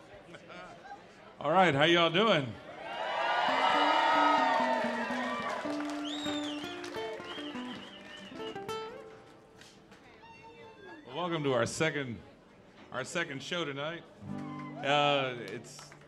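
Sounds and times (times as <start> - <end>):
audience cheering and whooping: 2.7 - 8.6, 14.3 - 15.0
high whistle: 5.9 - 8.9.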